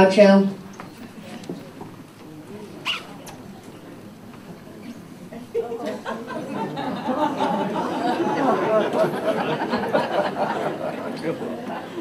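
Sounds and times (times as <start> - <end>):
murmur of voices in a hall: 0.0 - 12.0
high squeak: 2.8 - 3.1.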